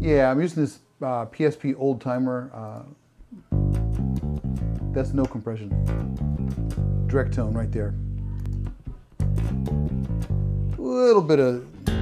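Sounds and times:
electric bass plucked run: 0.0s - 0.2s, 3.4s - 10.8s, 11.8s - 12.0s.

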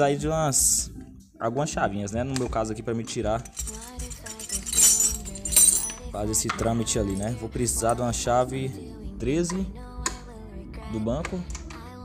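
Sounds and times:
metal tools clattering on tile floor: 3.4s - 8.0s.

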